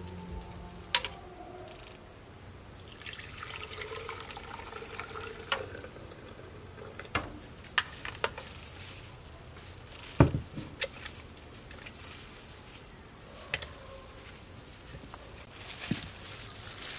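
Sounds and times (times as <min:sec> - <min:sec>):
liquid pouring splash: 0:02.9 - 0:06.3.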